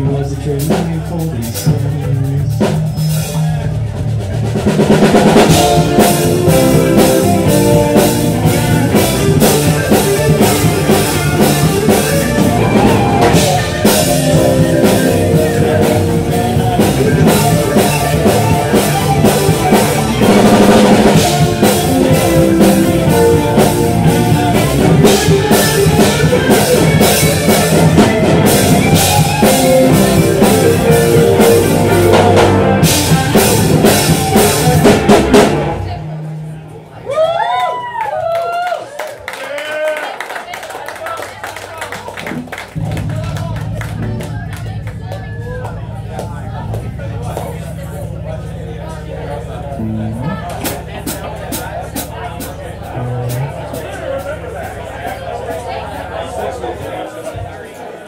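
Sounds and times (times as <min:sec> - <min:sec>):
live band with drums and guitar: 0:00.0 - 0:39.4, 0:40.0 - 0:57.8.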